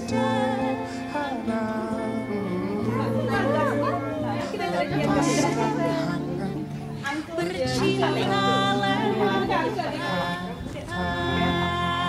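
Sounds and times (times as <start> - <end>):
background music with low notes: 0.0 - 12.0
people chattering: 0.0 - 12.0.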